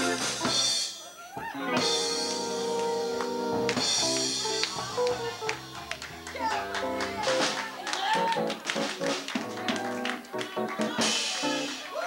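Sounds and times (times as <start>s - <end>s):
live band playing samba: 0.0s - 12.0s.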